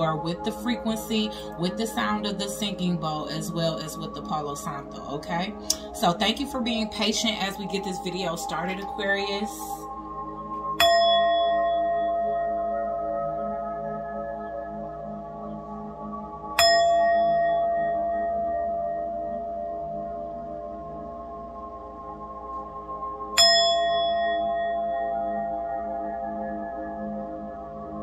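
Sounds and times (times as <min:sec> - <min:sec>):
singing bowl ringing: 0:00.0 - 0:21.2, 0:22.5 - 0:28.0
metal singing bowl ringing: 0:10.8 - 0:14.0, 0:16.6 - 0:20.6, 0:23.4 - 0:27.2.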